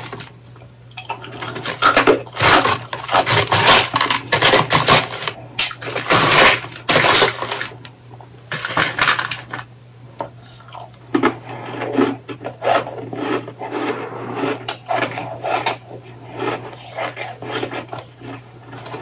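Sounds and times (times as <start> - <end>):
ice being chewed: 10.4 - 19.0.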